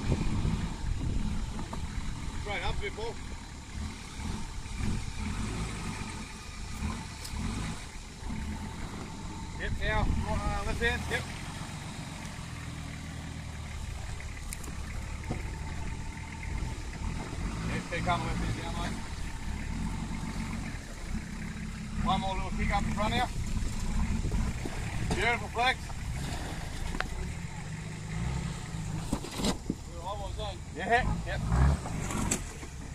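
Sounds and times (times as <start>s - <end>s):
engine running at low revs: 0.0s - 32.9s.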